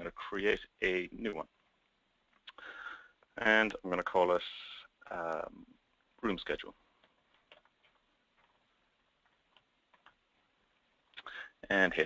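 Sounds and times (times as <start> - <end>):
computer keyboard keystrokes: 7.0 - 8.6.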